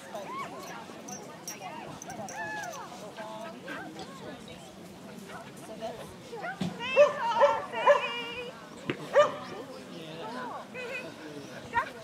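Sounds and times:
dog barking: 9.1 - 9.4.

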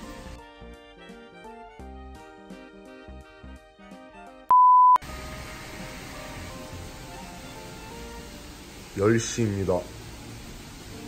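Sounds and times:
light background music: 0.0 - 9.9
loud electronic beep: 4.5 - 5.0
steady hiss: 5.0 - 11.0.

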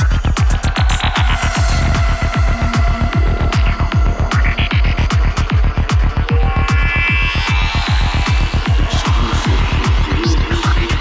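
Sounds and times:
rolling bassline: 0.0 - 11.0.

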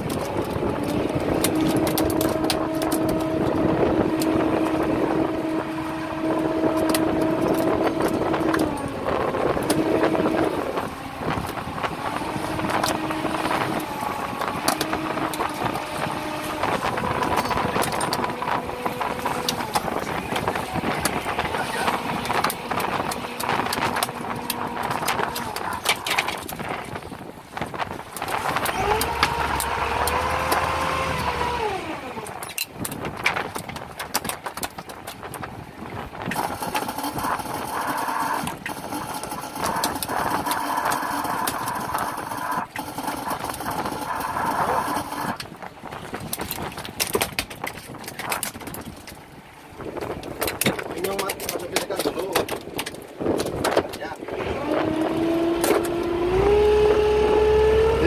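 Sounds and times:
boat motor humming: 0.0 - 58.0
sharp clicks and clatter: 19.3 - 27.0, 32.2 - 35.5, 36.3 - 45.5, 46.2 - 49.2, 50.3 - 54.1.

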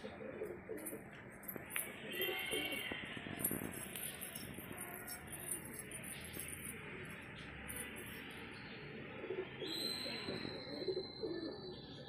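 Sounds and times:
pigeon cooing: 0.0 - 1.1, 9.0 - 11.7.

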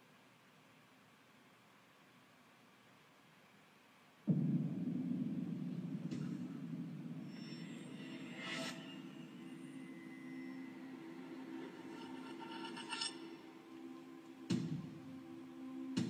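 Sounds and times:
low steady drone: 4.3 - 16.0.

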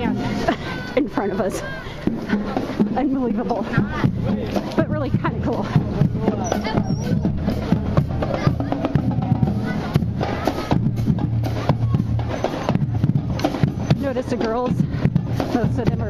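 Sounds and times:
marching band playing: 0.0 - 16.0
voices: 0.0 - 16.0
bass and snare drum strokes: 2.0 - 16.0.

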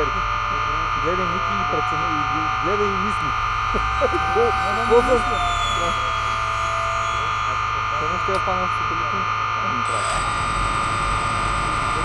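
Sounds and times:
brief voices: 0.0 - 10.4
model airplane electric motor buzzing: 9.8 - 12.0.

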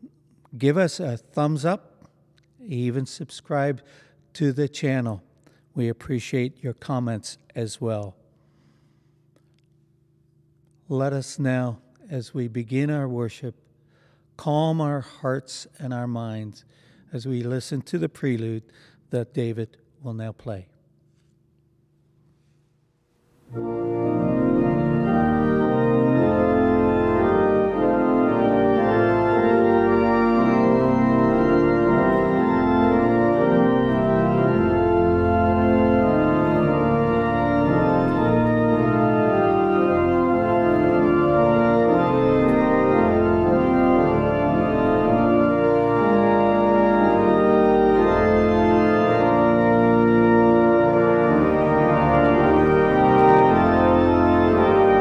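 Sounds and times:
church organ chords: 0.0 - 9.0, 10.9 - 20.7, 23.4 - 55.0.

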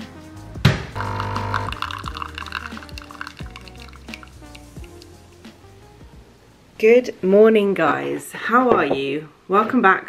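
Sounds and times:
background music with steady beat: 0.0 - 6.8
espresso machine running: 1.0 - 2.2
coffee pouring into cup: 1.0 - 5.1.

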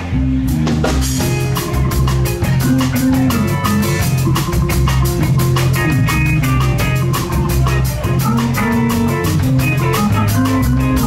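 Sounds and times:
drum kit beat with cymbals: 0.0 - 11.0
electric bass: 0.0 - 11.0
electric guitar: 0.0 - 11.0
keyboard: 0.0 - 11.0.

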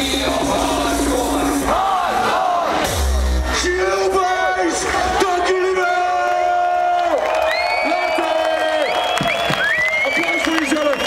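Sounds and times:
hardcore techno music: 0.0 - 6.2
heavy bass: 0.0 - 6.9
crowd yelling and cheering: 0.0 - 11.0.

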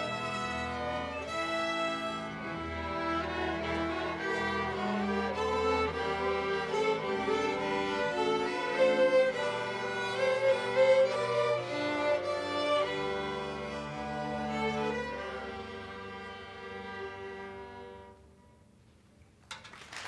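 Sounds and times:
string orchestra playing held notes: 0.0 - 18.6.

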